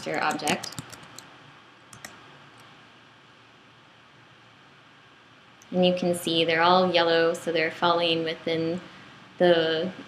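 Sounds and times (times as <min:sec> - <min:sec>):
low room hiss: 0:00.0 - 0:10.0
computer input clicks: 0:00.1 - 0:01.3, 0:01.9 - 0:02.2.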